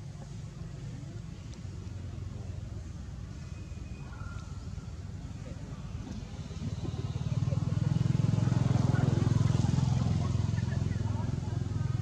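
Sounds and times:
vehicle engine passing by: 0:05.8 - 0:12.0.

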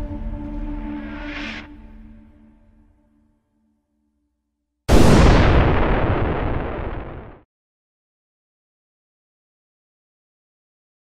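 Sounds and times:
deep cinematic boom: 0:04.9 - 0:07.4.

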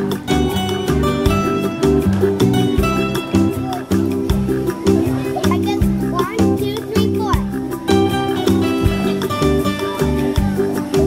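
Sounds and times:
music with a steady beat: 0:00.0 - 0:11.0.

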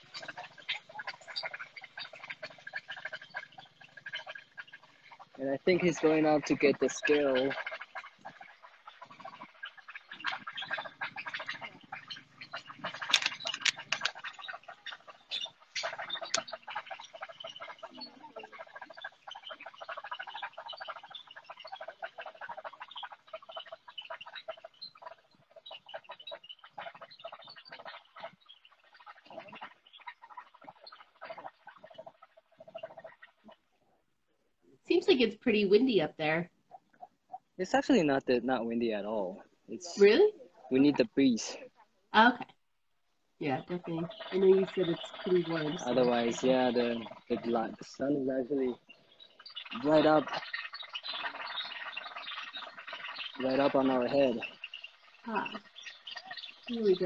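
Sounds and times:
indistinct voices: 0:43.4 - 0:48.8, 0:49.7 - 0:50.3.

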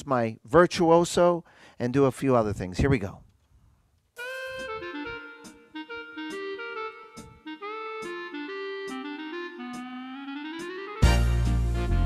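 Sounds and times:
electronic organ melody: 0:04.2 - 0:12.0
organ accompaniment: 0:04.2 - 0:12.0.

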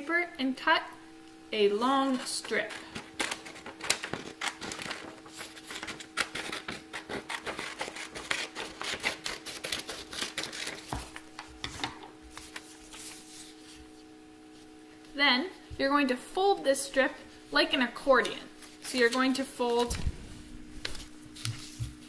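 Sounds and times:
faint steady hum: 0:00.0 - 0:22.0
scissors snipping paper: 0:02.4 - 0:11.1.

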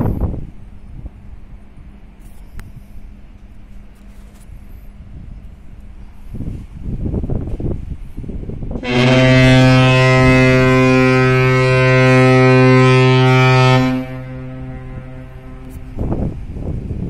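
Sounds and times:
ship's horn deep blast: 0:08.7 - 0:17.0.

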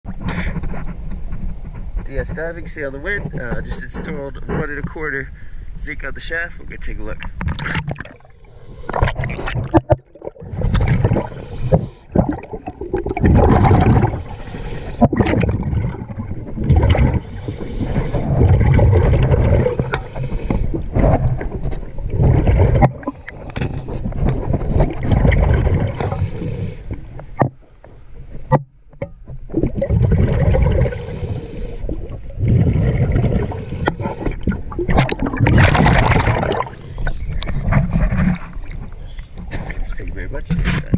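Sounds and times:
diver breathing through regulator: 0:00.2 - 0:00.9, 0:08.2 - 0:09.8, 0:10.8 - 0:12.5, 0:13.4 - 0:16.2, 0:16.8 - 0:24.7, 0:25.4 - 0:27.1, 0:30.2 - 0:34.8, 0:36.6 - 0:37.9
exhaled bubbles underwater: 0:07.2 - 0:27.5, 0:29.5 - 0:40.1.

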